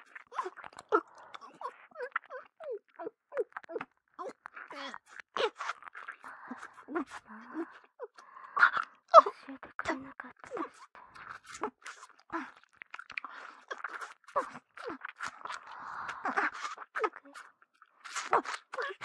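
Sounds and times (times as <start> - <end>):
wet mouth sucking and slurping: 0.0 - 7.8, 10.9 - 19.0.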